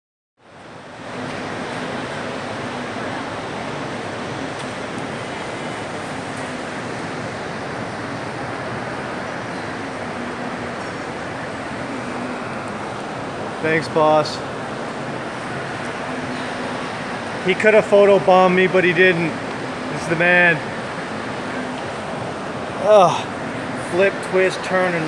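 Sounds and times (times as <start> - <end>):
ventilation noise: 0.4 - 25.0
distant crowd: 1.2 - 25.0.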